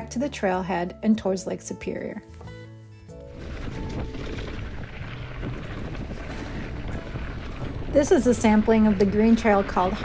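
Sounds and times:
bike tyres rolling on dirt trail: 0:03.1 - 0:10.0
wind rumble on microphone: 0:03.2 - 0:10.0.

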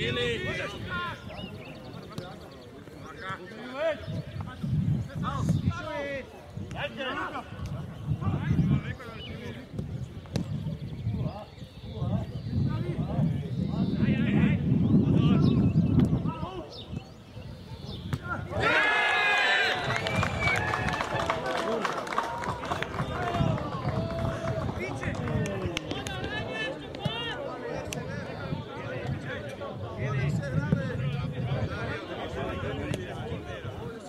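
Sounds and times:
people calling and talking: 0:00.0 - 0:34.0
distant players shouting: 0:18.2 - 0:25.0.

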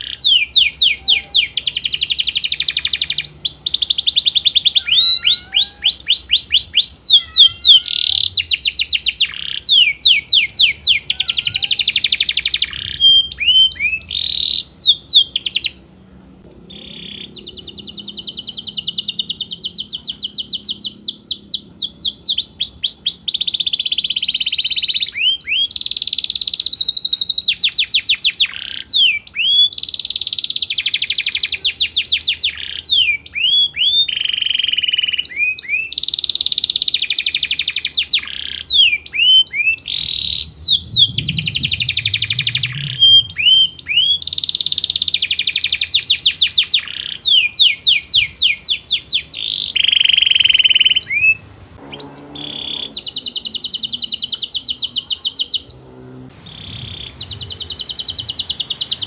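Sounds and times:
canary singing trills: 0:00.0 - 0:59.0.

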